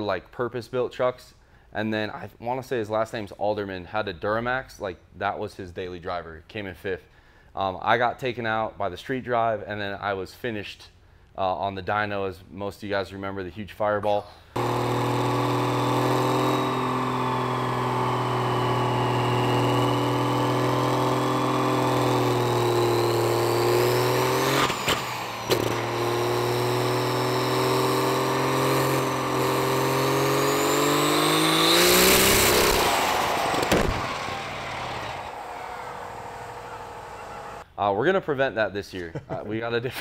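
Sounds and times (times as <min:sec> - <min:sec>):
diesel engine under full load: 0:14.6 - 0:37.6
loud rushing burst: 0:30.5 - 0:37.6
sharp cracks: 0:31.4 - 0:37.6
turbo whistle: 0:31.4 - 0:37.6.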